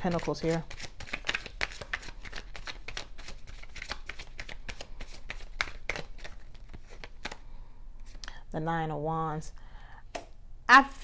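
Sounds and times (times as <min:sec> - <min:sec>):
cards being shuffled: 0:00.0 - 0:08.2.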